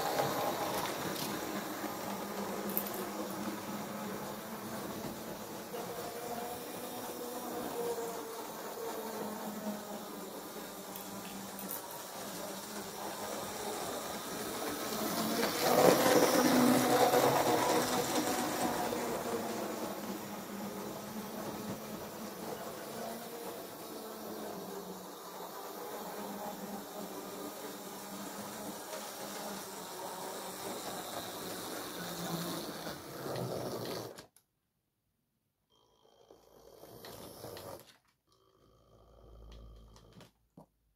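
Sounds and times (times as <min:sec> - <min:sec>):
model train motor whirring: 0:00.0 - 0:34.3
wheels on rails: 0:00.0 - 0:34.3.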